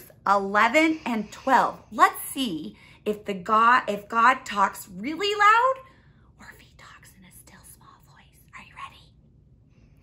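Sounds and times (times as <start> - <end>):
woman whispering: 6.4 - 9.2.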